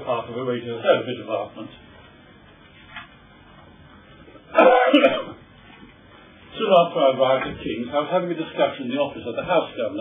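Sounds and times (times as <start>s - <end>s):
man coughing: 4.5s - 5.4s.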